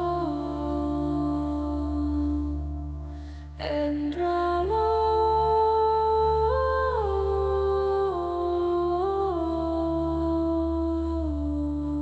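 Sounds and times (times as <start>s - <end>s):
hummed melody: 0.0s - 12.0s
low drone: 0.0s - 12.0s.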